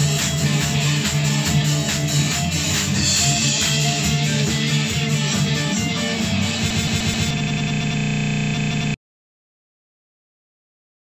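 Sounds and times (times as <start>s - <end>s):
band music with electric guitar: 0.0s - 9.0s
evenly repeating buzz: 0.4s - 9.0s.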